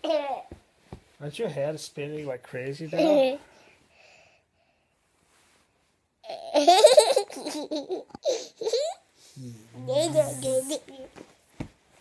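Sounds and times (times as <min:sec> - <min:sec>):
young boy laughing: 0:06.3 - 0:09.0.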